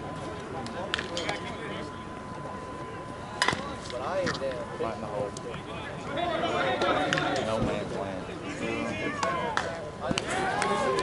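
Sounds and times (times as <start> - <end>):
people calling out: 8.5 - 11.0.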